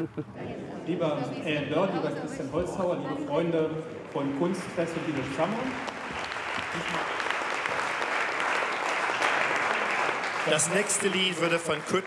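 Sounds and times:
audience applauding: 4.1 - 12.0.

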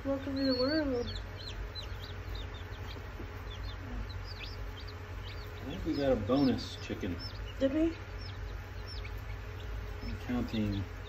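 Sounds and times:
chicks peeping: 0.0 - 11.0
low steady hum: 0.0 - 11.0.

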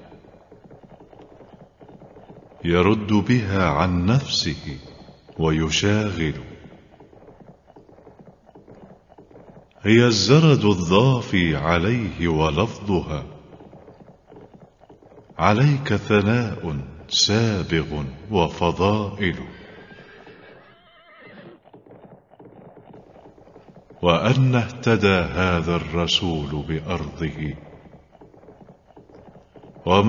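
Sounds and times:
horse whinny: 0.0 - 10.9, 19.2 - 24.9
hoofbeats: 0.0 - 30.0.

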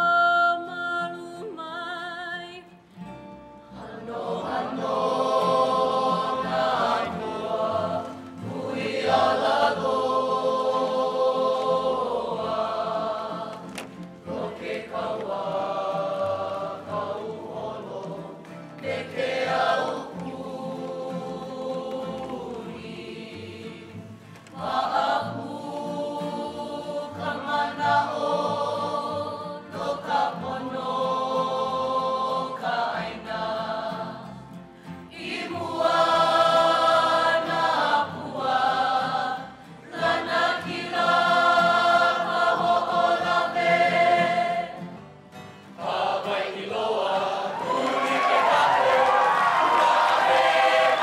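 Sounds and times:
choir singing: 3.7 - 51.0.

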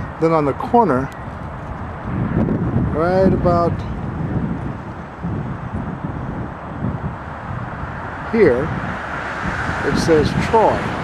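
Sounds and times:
distant city traffic: 0.0 - 11.0
wind buffeting microphone: 0.0 - 11.0.

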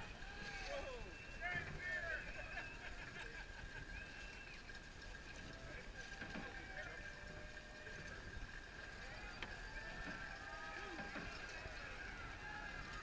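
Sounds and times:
outdoor background noise: 0.0 - 13.0.

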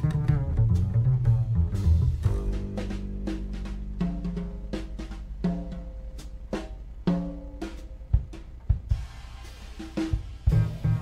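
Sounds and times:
double bass plucked: 0.0 - 8.1, 10.5 - 11.0
light drum kit strokes: 0.0 - 11.0.

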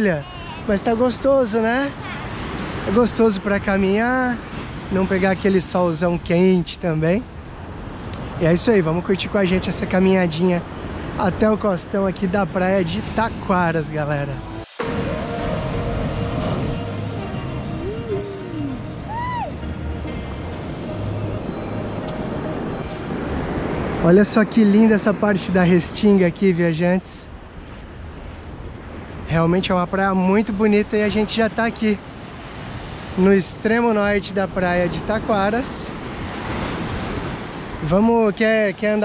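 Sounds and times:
small waves washing on sand: 0.0 - 18.6, 22.1 - 39.0.

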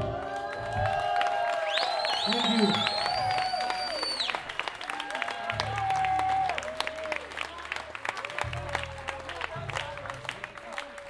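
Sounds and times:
audience applause: 0.0 - 11.0.

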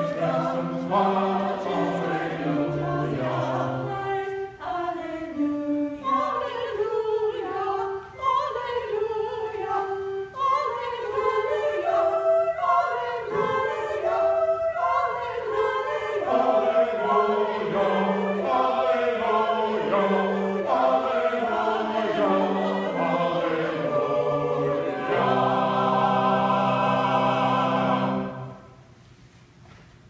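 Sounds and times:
choir singing a hymn: 0.0 - 28.8.

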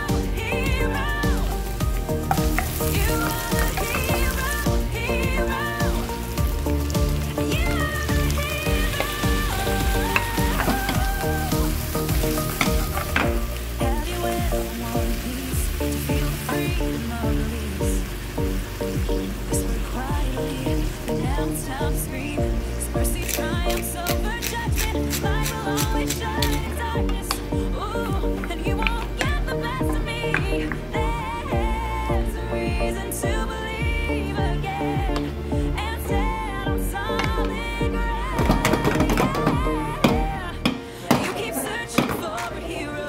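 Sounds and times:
stirring in a pan: 0.0 - 17.0
seafood sizzling: 0.0 - 32.0, 38.4 - 42.0
background music: 0.0 - 43.0
food frying in hot oil: 1.1 - 26.6.

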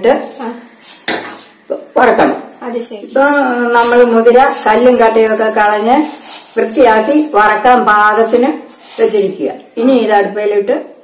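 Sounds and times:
dry seeds rattling in steel bowl: 3.7 - 7.4.

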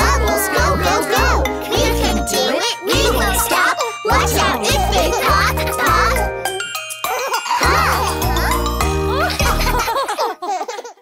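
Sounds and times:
cartoon child voices singing: 0.0 - 6.5, 7.5 - 8.6.

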